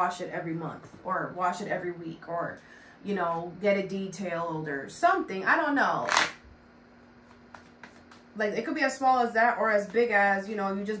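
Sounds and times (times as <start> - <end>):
cards tapping: 7.3 - 8.2.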